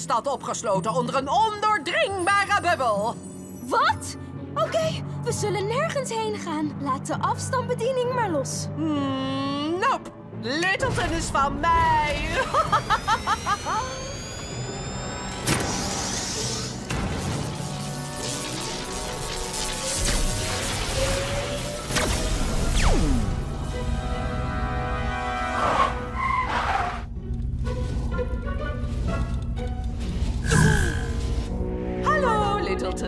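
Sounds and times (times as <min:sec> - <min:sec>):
dramatic cartoon score: 0:00.2 - 0:33.0.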